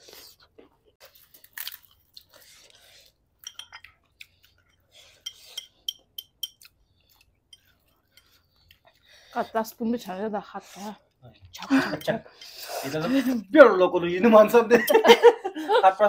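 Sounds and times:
people chewing food: 0:00.0 - 0:13.5.

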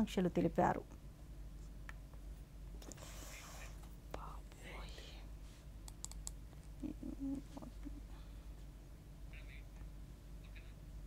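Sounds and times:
faint whispered voice: 0:03.0 - 0:05.3.

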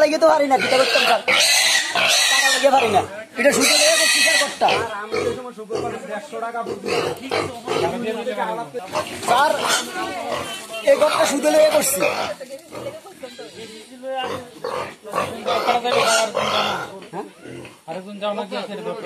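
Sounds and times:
piglet squealing: 0:00.6 - 0:04.8
pig grunts: 0:00.6 - 0:06.0, 0:06.6 - 0:08.0, 0:13.6 - 0:17.9.

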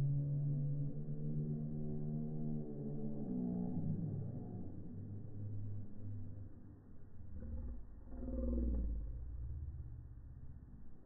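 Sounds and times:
low rumble: 0:00.0 - 0:11.0
slowed voice deep groan: 0:07.3 - 0:09.4.

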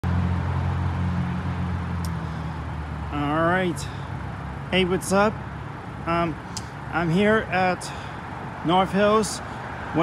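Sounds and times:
road noise: 0:00.0 - 0:10.0
vehicle engine running: 0:00.0 - 0:10.0.

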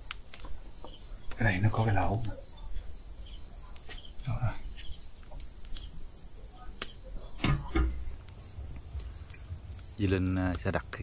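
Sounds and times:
crickets chirping: 0:00.0 - 0:11.0
low murmurs: 0:01.1 - 0:11.0.

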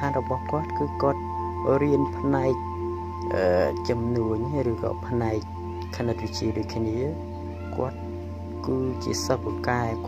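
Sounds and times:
voiceover narration: 0:00.0 - 0:02.6, 0:03.2 - 0:08.0, 0:08.6 - 0:10.0
music of steady held notes: 0:00.0 - 0:10.0.

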